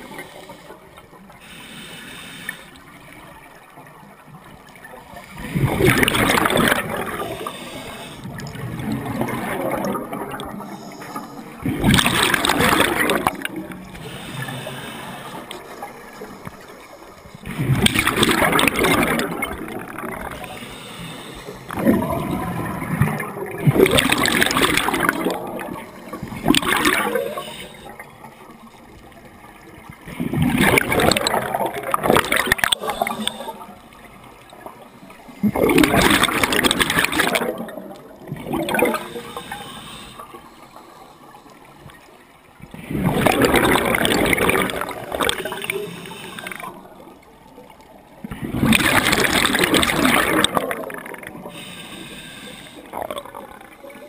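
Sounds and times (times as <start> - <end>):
diver breathing through regulator: 0.0 - 2.8, 6.0 - 8.5, 10.5 - 17.2, 20.3 - 22.2, 26.7 - 28.0, 32.3 - 33.8, 38.7 - 41.8, 45.2 - 47.0, 51.4 - 52.9.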